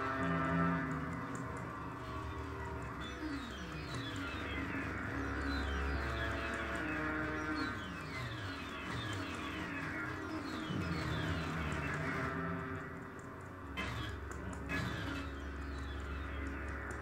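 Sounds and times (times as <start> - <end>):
experimental synthesizer noise music: 0.0 - 17.0
low hum: 0.0 - 17.0.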